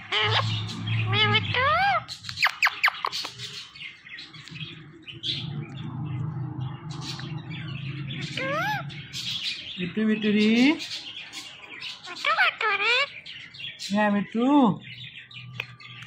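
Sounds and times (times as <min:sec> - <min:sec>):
low steady hum: 0:00.0 - 0:02.7, 0:04.2 - 0:10.8
parakeet whistling: 0:00.0 - 0:03.5, 0:06.7 - 0:09.7
parakeet mimicking speech: 0:12.1 - 0:13.1.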